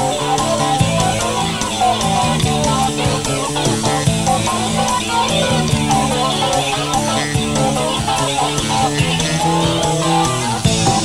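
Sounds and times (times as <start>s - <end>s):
bass guitar: 0.0s - 11.0s
electric guitars: 0.0s - 11.0s
steady drum beat: 0.0s - 11.0s.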